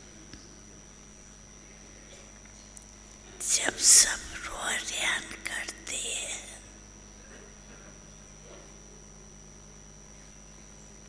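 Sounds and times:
woman speaking into a microphone: 0:03.4 - 0:06.6.

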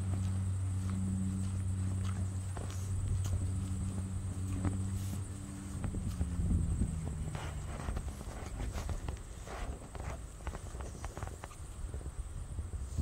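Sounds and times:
footsteps on grass: 0:00.0 - 0:12.0
low steady hum: 0:00.0 - 0:13.0.

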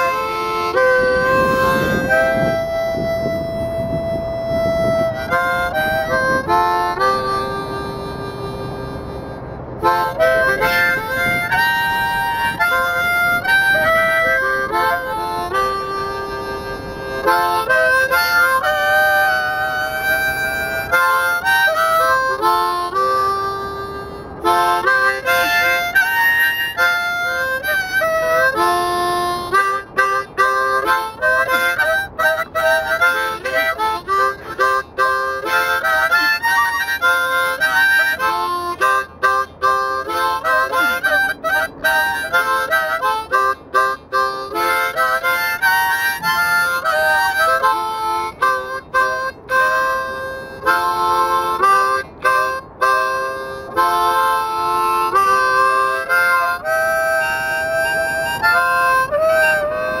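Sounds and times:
harmonica playing slow blues: 0:00.0 - 1:00.0.

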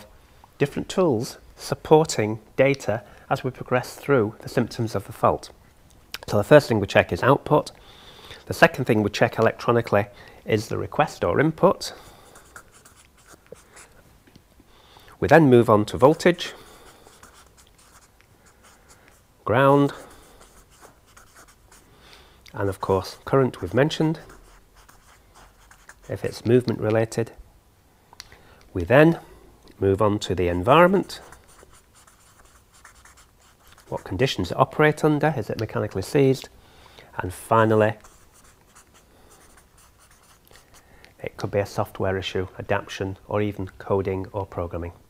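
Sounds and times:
marker scratching on paper: 0:12.0 - 0:14.0, 0:16.1 - 0:21.9, 0:23.6 - 0:26.7, 0:30.8 - 0:34.6, 0:37.7 - 0:40.8.

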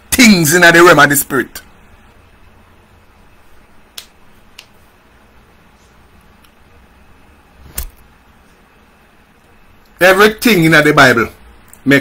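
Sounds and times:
quiet room noise: 0:00.0 - 0:12.0.

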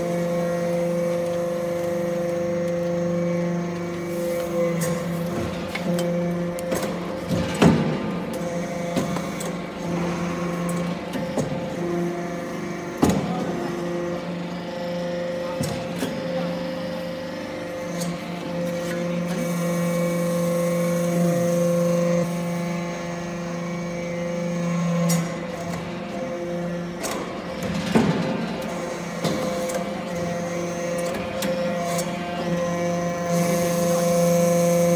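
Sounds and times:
hydraulic press humming: 0:00.0 - 0:34.9.

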